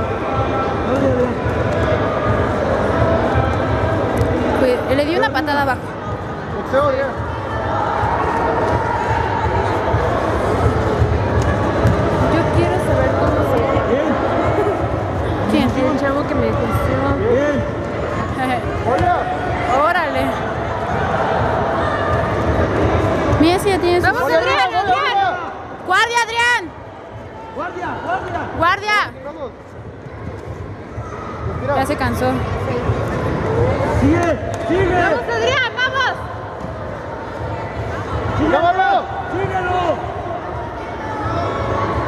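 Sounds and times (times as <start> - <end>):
crowd murmur: 0.0 - 42.0.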